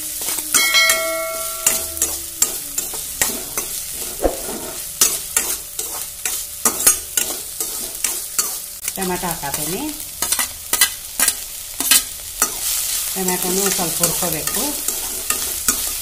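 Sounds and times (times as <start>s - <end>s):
steel pan ringing: 0.0s - 5.4s
metal spatula scraping pan: 0.0s - 8.7s, 13.6s - 16.0s
onions sizzling in oil: 0.0s - 16.0s.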